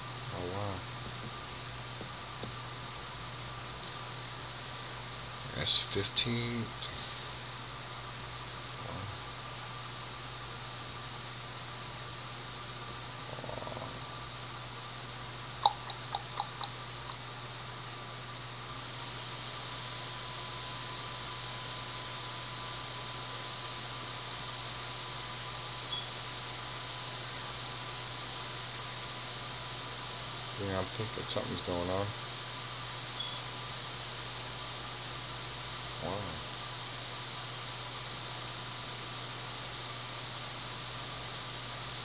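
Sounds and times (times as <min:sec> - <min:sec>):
faint high whine: 0:00.0 - 0:10.0, 0:18.3 - 0:27.2, 0:33.1 - 0:33.6
computer fan hum: 0:00.0 - 0:42.0.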